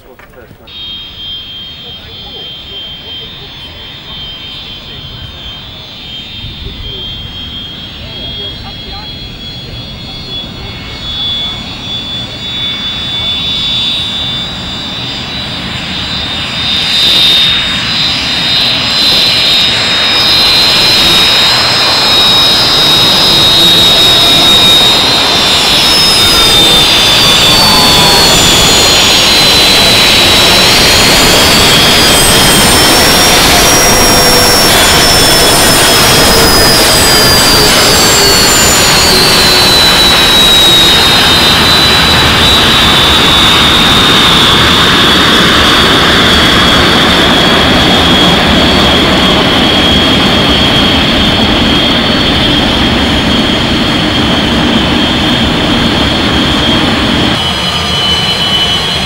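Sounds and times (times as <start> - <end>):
jet engines whining and roaring: 0.0 - 59.0.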